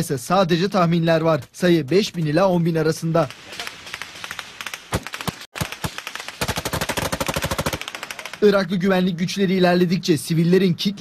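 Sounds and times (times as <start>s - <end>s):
rifle shots: 3.3s - 8.6s
automatic gunfire burst: 3.7s - 8.6s.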